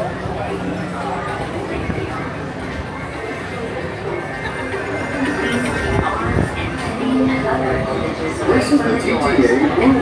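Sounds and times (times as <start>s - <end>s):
indistinct voices: 0.0s - 10.0s.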